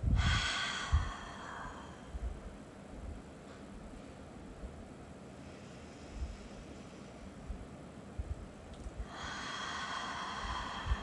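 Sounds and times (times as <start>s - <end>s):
deep human exhale: 0.1s - 2.3s, 5.4s - 7.4s, 9.0s - 11.0s.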